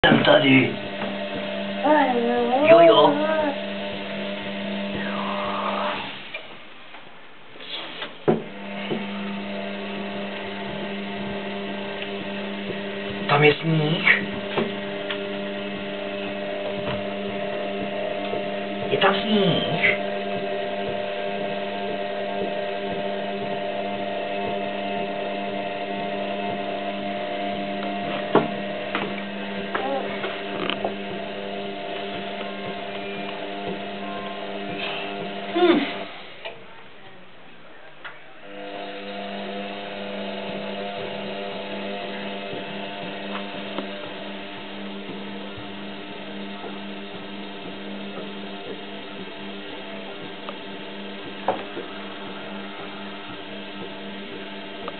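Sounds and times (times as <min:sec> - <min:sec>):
washing machine motor hum: 0:00.0 - 0:06.5, 0:07.7 - 0:36.7, 0:38.4 - 0:54.9.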